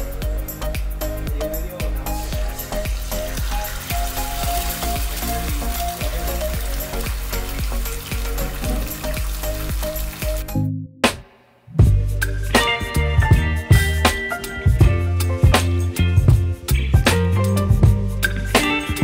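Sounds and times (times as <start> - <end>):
music with steady beat: 0.0 - 19.0
eggs sizzling in a skillet: 2.5 - 10.5.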